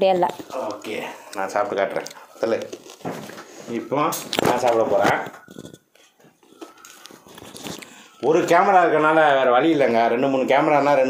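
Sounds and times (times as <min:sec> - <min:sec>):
people talking: 0:03.7 - 0:05.5, 0:08.2 - 0:11.0.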